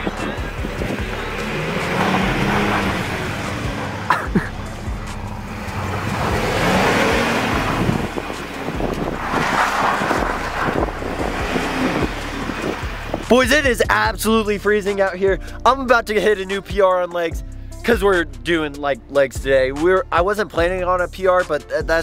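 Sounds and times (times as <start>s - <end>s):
tyres spinning on snow: 0.0s - 4.1s, 5.3s - 13.3s
pickup engine revving: 0.0s - 14.0s.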